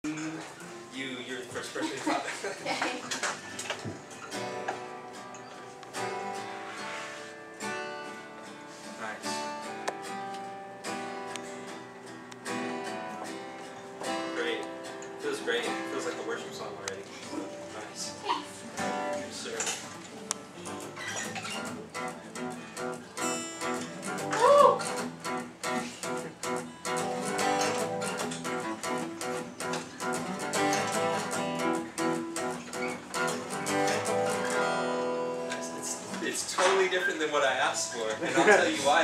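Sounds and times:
acoustic guitar strumming swing: 0.0s - 39.0s.

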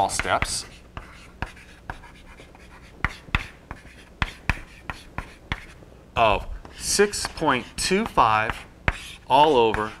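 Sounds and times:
chalk writing on a blackboard: 0.0s - 5.8s, 6.6s - 10.0s.

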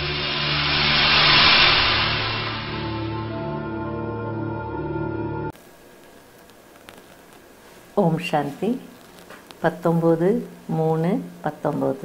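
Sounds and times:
whoosh sound effect: 0.0s - 4.0s
sustained intro music tones: 0.0s - 5.6s.

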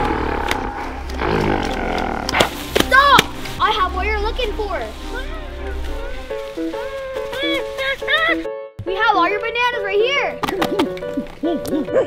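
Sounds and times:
roaring and growling: 0.0s - 2.5s.

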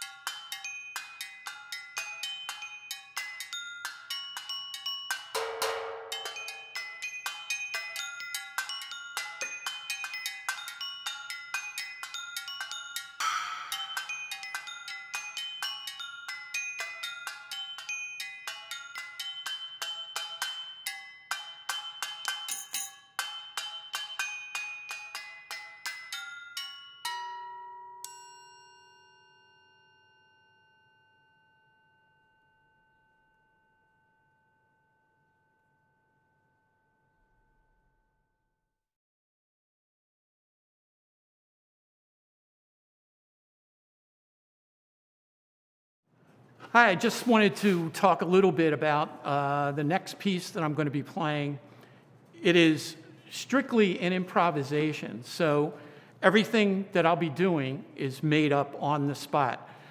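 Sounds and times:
metal percussion struck with mallets: 0.0s - 10.8s, 11.8s - 29.4s
bell-like tones ringing: 0.0s - 35.3s.

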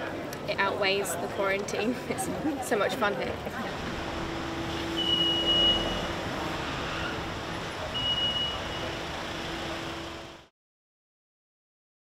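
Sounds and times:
road noise: 0.0s - 10.5s
traffic engine hum: 0.1s - 10.5s
long high electronic beeps: 4.5s - 6.3s, 7.9s - 9.0s.

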